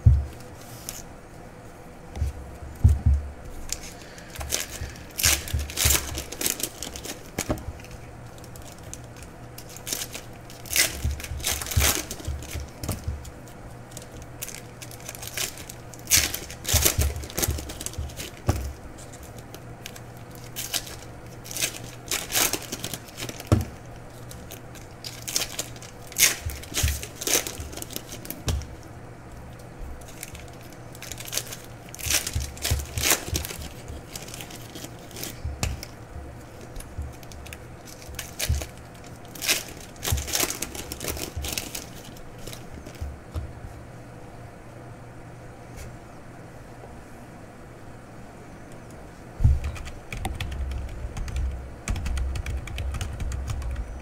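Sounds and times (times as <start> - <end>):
foil wrappers tearing and crinkling: 3.6 - 28.9, 29.5 - 43.1.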